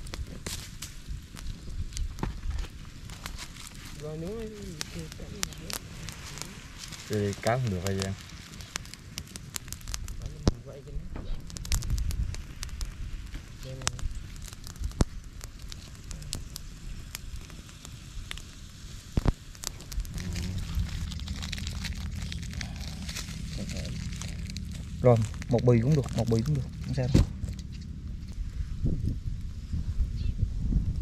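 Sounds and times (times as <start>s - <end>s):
wood fire crackling and popping: 0.0s - 29.7s.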